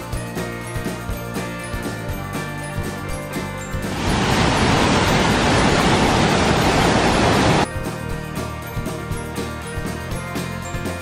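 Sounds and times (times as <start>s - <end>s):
music: 0.0s - 11.0s
waterfall rushing over boulders: 3.8s - 7.6s.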